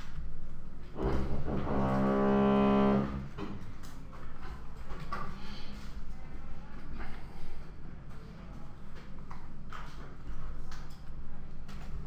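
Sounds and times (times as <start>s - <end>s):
low rumble: 0.8s - 3.5s.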